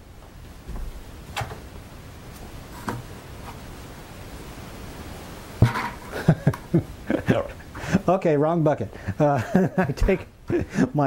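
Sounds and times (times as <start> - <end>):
plastic buckets knocking: 5.6 - 6.6.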